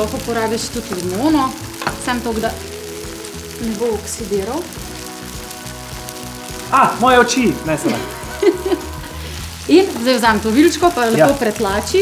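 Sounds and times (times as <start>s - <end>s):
background music: 0.0s - 12.0s
tofu sizzling in a pan: 0.0s - 12.0s.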